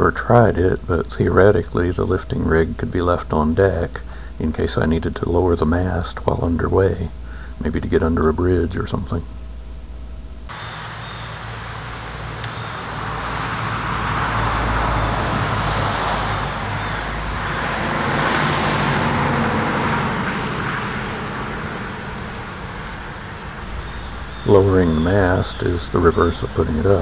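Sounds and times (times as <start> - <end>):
passing vehicles: 10.5 - 27.0.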